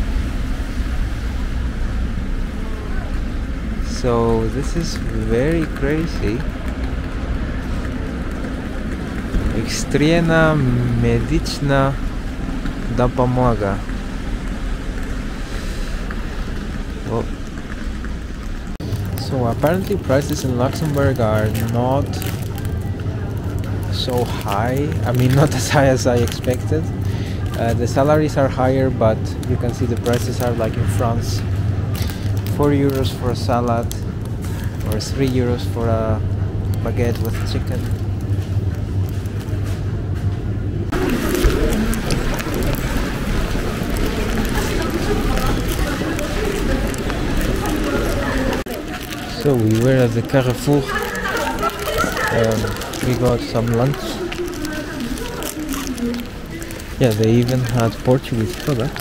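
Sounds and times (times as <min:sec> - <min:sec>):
low rumble: 0:00.0 - 0:59.0
street noise: 0:00.0 - 0:59.0
low hum of chilled shelves: 0:18.9 - 0:59.0.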